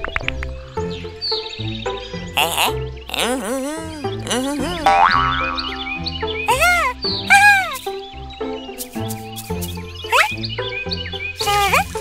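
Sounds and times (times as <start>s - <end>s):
cheerful cartoon music: 0.0s - 12.0s
boing comic sound effects: 4.6s - 5.8s.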